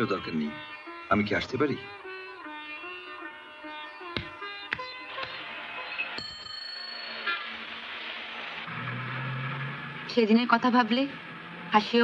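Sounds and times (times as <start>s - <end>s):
street traffic noise: 4.1s - 12.0s
high ringing tone: 6.2s - 7.9s
bus engine hum: 7.3s - 12.0s.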